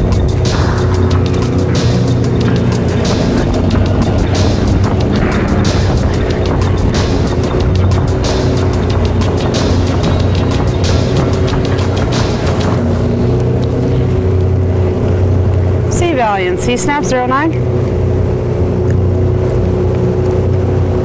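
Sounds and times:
background music: 0:00.0 - 0:18.0
motorboat engine droning: 0:00.0 - 0:21.0.

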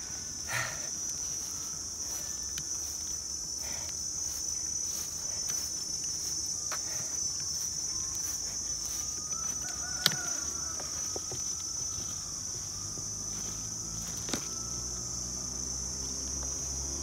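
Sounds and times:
insects chirring: 0:00.0 - 0:17.0.

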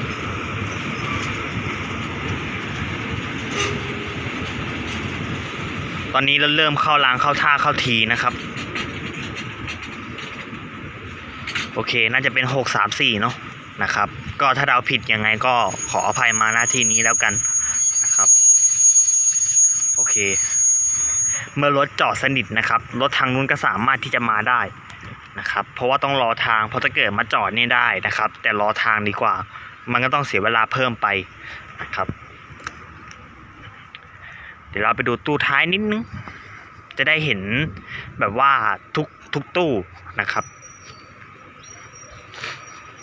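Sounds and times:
train wheels rumbling on rails: 0:00.0 - 0:19.5
train brakes squealing: 0:03.4 - 0:05.3, 0:14.5 - 0:22.3, 0:40.2 - 0:43.0
brake hiss: 0:42.2 - 0:43.0.

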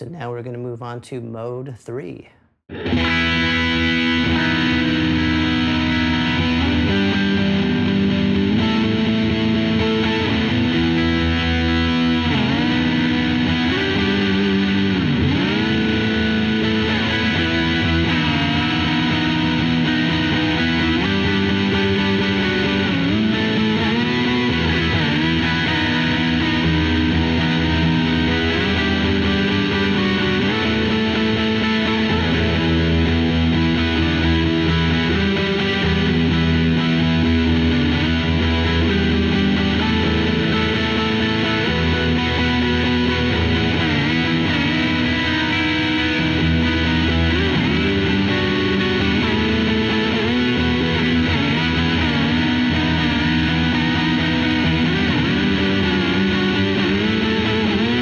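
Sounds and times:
overdriven electric guitar: 0:02.7 - 0:58.0.

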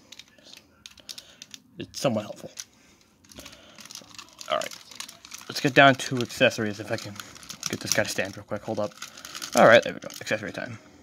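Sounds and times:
plastic toy clicks and creaks: 0:00.0 - 0:10.6.

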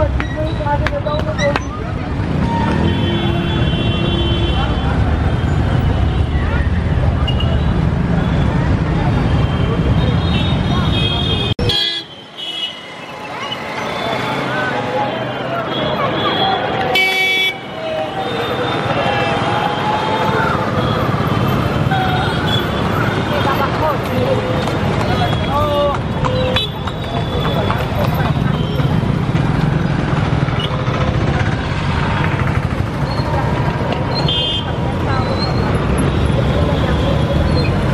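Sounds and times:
people talking: 0:00.0 - 0:02.6, 0:04.4 - 0:11.7, 0:13.3 - 0:37.9
traffic: 0:00.0 - 0:37.9
vehicle horns honking: 0:02.3 - 0:06.4, 0:09.2 - 0:13.2, 0:15.2 - 0:23.6, 0:24.3 - 0:29.1, 0:34.1 - 0:37.7.

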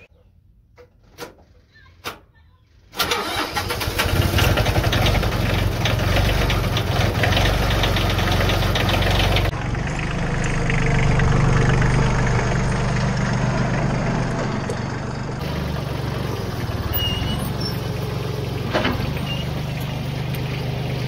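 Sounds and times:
tractor engine starting and running: 0:00.7 - 0:21.0.

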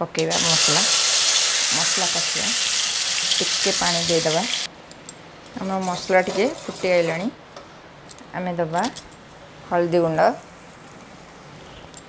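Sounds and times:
woman speaking: 0:00.0 - 0:00.9, 0:01.7 - 0:02.6, 0:03.4 - 0:04.6, 0:05.6 - 0:07.4, 0:08.3 - 0:09.0, 0:09.7 - 0:10.5
faint background noise: 0:00.0 - 0:12.0.

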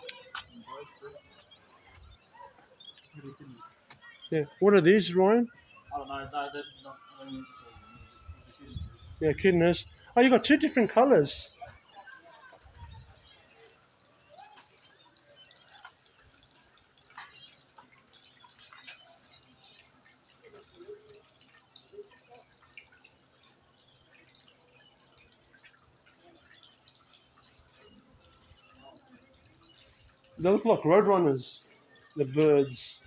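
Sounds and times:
faint trickling stream: 0:00.0 - 0:33.0.

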